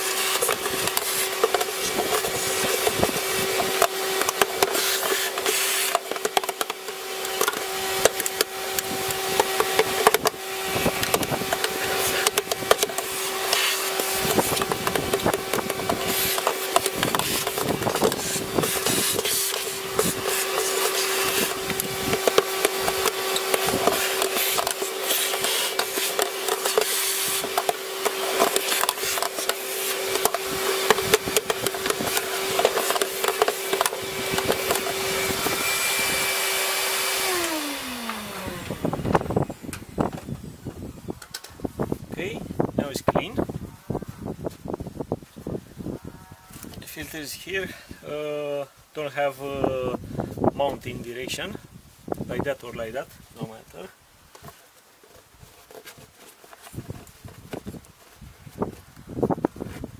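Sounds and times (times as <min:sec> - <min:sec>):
brush scrubbing plastic: 0:00.0 - 0:37.5, 0:52.5 - 0:59.9
vacuum cleaner running: 0:00.0 - 0:41.1
vacuum motor winding down: 0:00.0 - 0:41.3.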